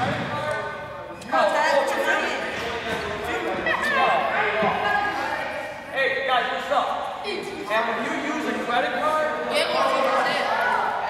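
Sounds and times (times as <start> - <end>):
young voices talking in a gymnasium: 0.0 - 11.0.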